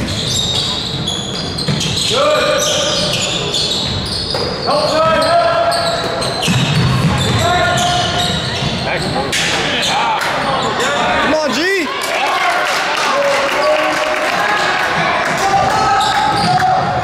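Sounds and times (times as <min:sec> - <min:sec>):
sneakers squeaking: 0:00.0 - 0:11.3, 0:15.2 - 0:17.0
voices in a gym: 0:00.0 - 0:17.0.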